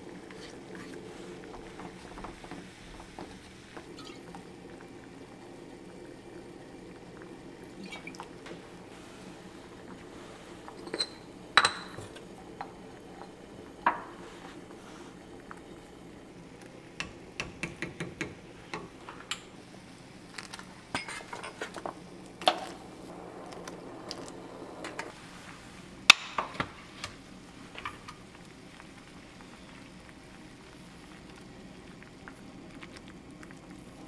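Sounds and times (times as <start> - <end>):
broth bubbling at a rolling boil: 0.0 - 34.0
spoon tapping kitchen containers: 17.0 - 19.5.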